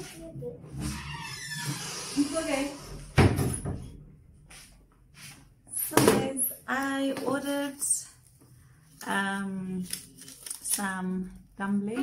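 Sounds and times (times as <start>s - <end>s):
plastic bags rustling: 9.0s - 11.3s.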